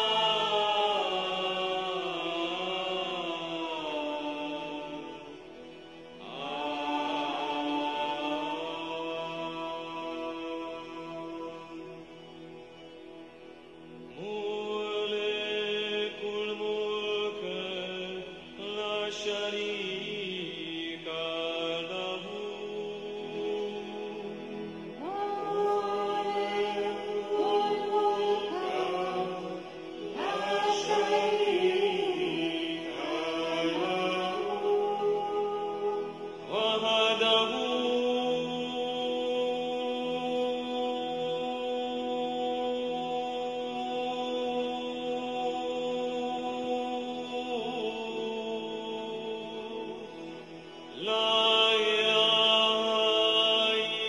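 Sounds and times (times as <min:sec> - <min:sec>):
person chanting: 0:00.0 - 0:13.2, 0:13.8 - 0:54.0
steady drone: 0:00.0 - 0:43.2.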